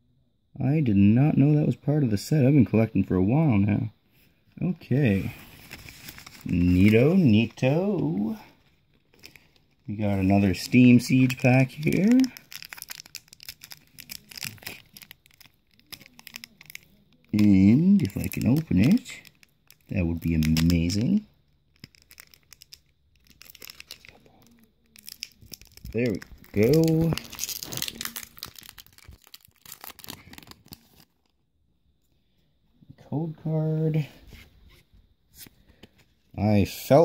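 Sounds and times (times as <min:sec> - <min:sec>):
foil wrapper crinkling: 0:05.1 - 0:31.4.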